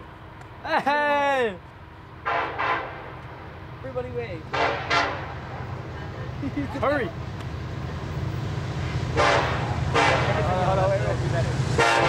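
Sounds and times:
low engine rumble: 0.0s - 12.0s.

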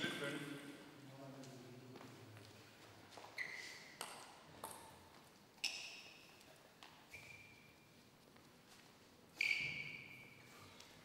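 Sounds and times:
table tennis ball bouncing: 4.0s - 5.0s.

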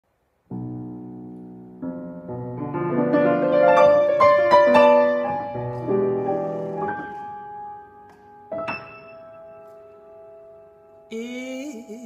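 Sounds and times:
solo jazz piano: 0.4s - 11.1s.

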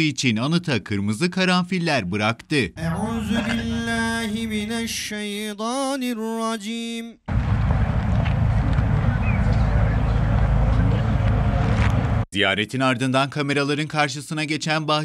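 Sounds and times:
man chanting: 1.7s - 6.8s
wind buffeting microphone: 7.3s - 12.2s.

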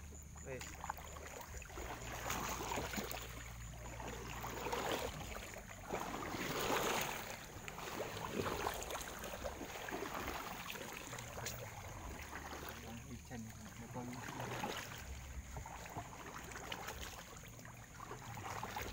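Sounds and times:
water splashing around boat: 0.0s - 18.9s.

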